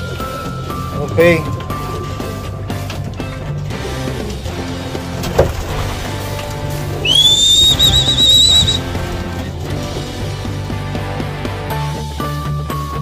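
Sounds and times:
background music: 0:00.0 - 0:13.0
high rising whistle: 0:07.0 - 0:08.9.

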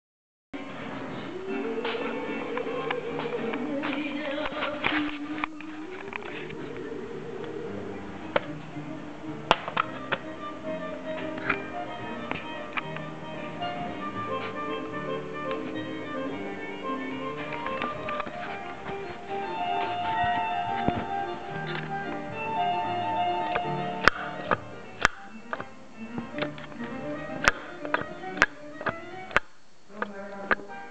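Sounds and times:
music playing: 0:00.6 - 0:29.4.

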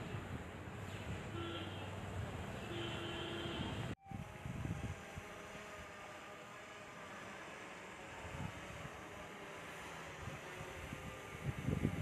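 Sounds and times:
wind rumbling on microphone: 0:03.5 - 0:06.0, 0:08.1 - 0:12.0
drone whirring hum: 0:04.0 - 0:12.0.

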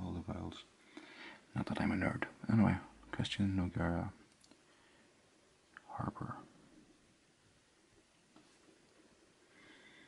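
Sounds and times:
faint rustle: 0:08.0 - 0:10.0.

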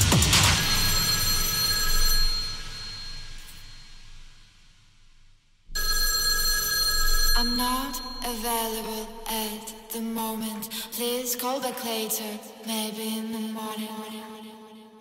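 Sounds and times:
techno kick-drum beat: 0:00.0 - 0:01.2
person singing: 0:07.4 - 0:14.8.

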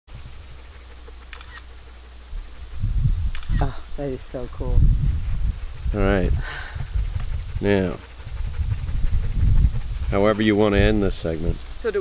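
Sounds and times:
wind buffeting microphone: 0:00.1 - 0:01.6, 0:02.3 - 0:12.0.

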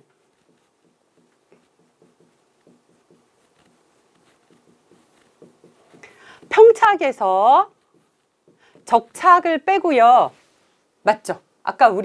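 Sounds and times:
pen writing on a board: 0:00.0 - 0:09.6.

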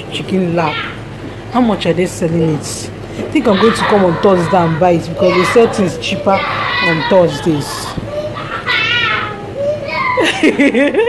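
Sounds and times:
child shouting: 0:00.6 - 0:01.0, 0:03.4 - 0:10.4
faint voices: 0:02.1 - 0:10.2.

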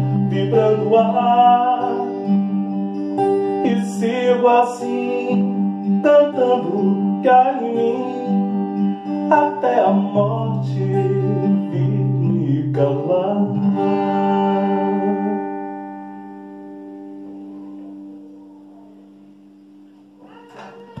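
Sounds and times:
acoustic guitar strummed: 0:00.0 - 0:21.0.

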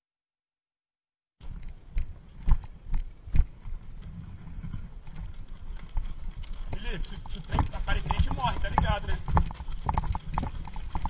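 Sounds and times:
bicycle rumbling over railway track: 0:01.4 - 0:11.0.

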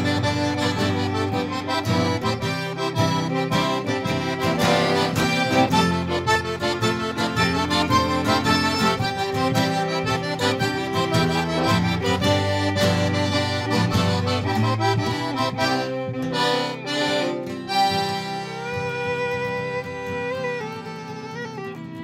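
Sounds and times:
acoustic guitar strumming: 0:00.0 - 0:22.0
button accordion melody: 0:00.0 - 0:22.0
fiddle playing: 0:00.0 - 0:22.0.

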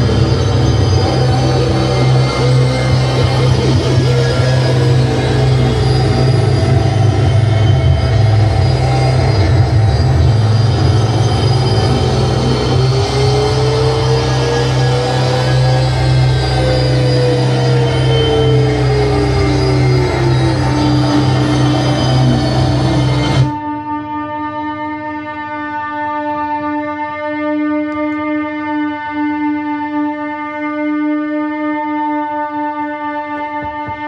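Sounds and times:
low drone: 0:00.0 - 0:23.6
rising and falling pitched tone: 0:00.0 - 0:23.6
dense wall of electronic noise: 0:00.0 - 0:23.7.

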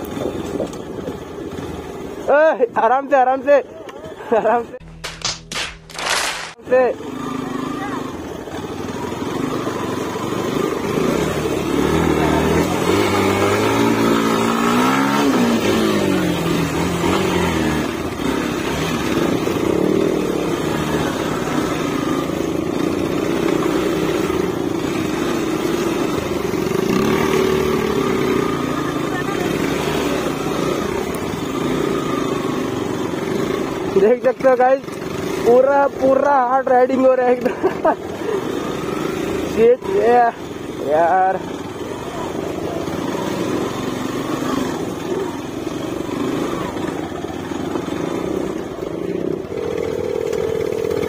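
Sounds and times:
motorcycle engine revving: 0:00.0 - 0:51.0.

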